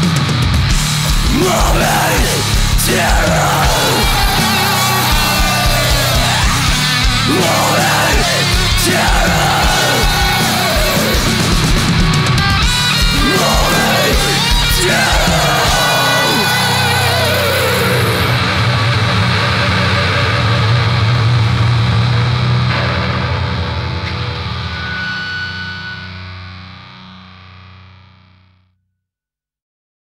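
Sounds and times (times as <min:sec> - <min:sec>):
distorted electric guitar chord: 0:00.0 - 0:28.5.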